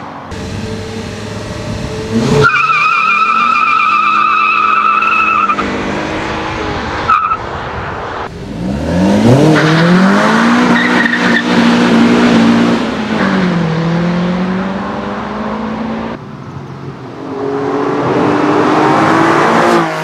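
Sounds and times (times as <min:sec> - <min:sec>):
car engine revving: 0:00.3 - 0:16.2, 0:17.2 - 0:20.0
tyres squealing: 0:02.3 - 0:05.6.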